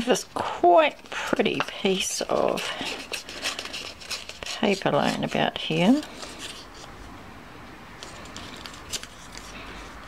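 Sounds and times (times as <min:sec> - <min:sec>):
paper rustling: 0:01.0 - 0:06.9, 0:08.0 - 0:10.0.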